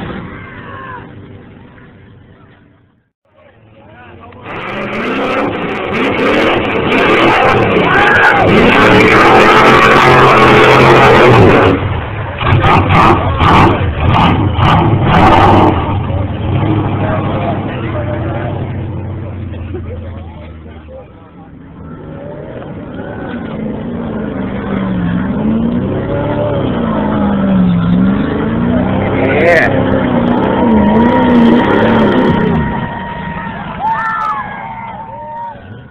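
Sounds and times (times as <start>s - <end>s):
truck engine running hard: 0.0s - 35.9s
truck engine revving: 4.2s - 35.9s.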